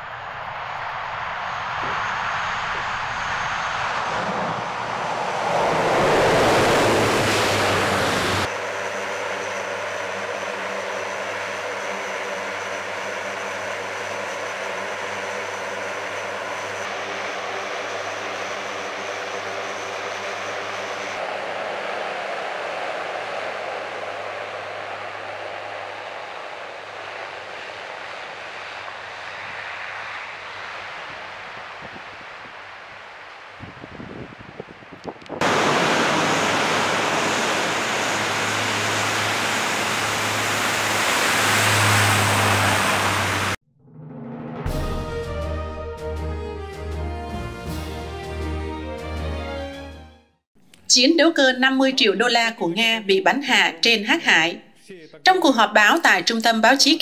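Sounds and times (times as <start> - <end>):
propeller drone: 0.0 - 43.6
turboprop aircraft engines: 0.0 - 43.6.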